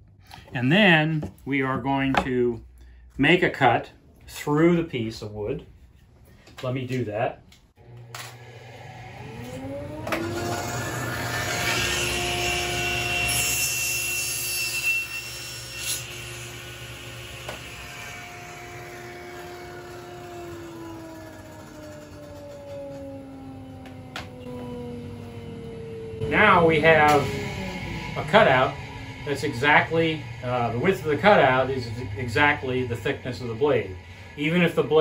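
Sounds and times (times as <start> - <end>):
saw cutting wood: 7.8 - 35.0
table saw running: 7.8 - 35.0.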